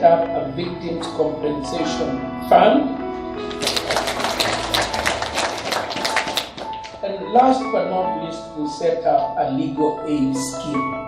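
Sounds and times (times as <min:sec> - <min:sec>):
music bed: 0:00.0 - 0:11.0.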